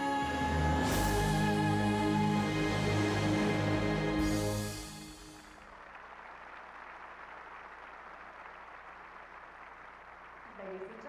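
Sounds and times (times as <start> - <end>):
audience applauding: 5.3 - 11.0.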